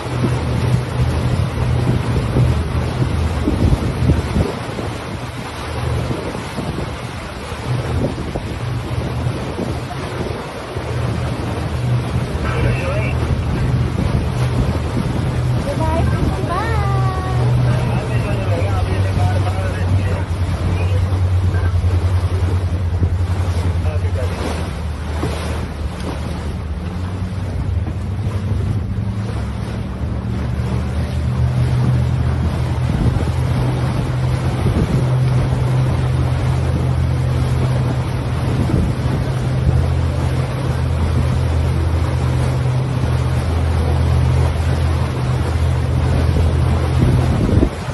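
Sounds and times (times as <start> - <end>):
boat engine droning: 0.0 - 47.9
water rushing along hull: 0.0 - 47.9
wind on microphone: 0.0 - 47.9.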